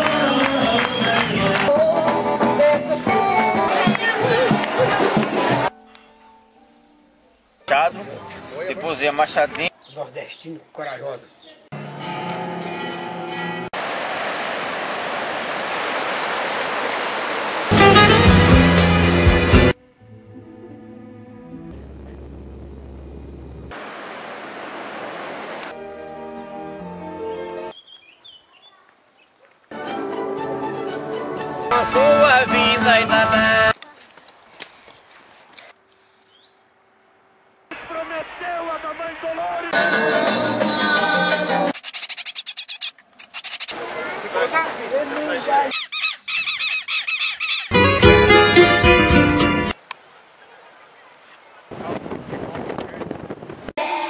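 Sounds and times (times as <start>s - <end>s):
whitewater rapids rushing: 13.8s - 19.5s
orchestral string music: 17.7s - 22.0s, 25.7s - 27.7s, 29.7s - 33.7s, 47.7s - 49.8s
faint bird chirps: 35.8s - 36.6s
nestlings begging calls: 41.8s - 43.8s, 45.7s - 47.7s.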